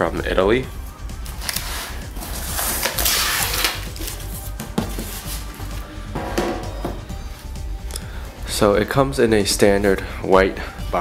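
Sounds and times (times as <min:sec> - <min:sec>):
background music: 0:00.0 - 0:11.0
cardboard rustling and scraping: 0:01.3 - 0:05.8
sharp knocks: 0:06.2 - 0:07.1.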